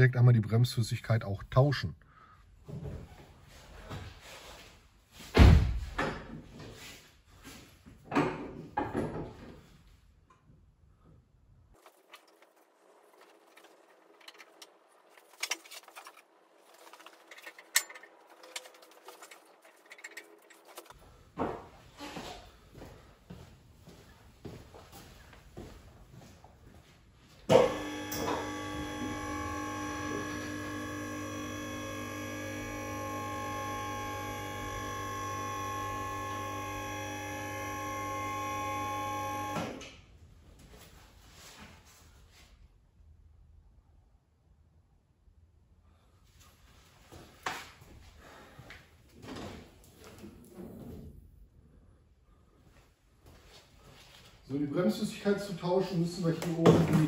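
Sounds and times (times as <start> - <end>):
car lift motor whining: 27.5 - 40.0.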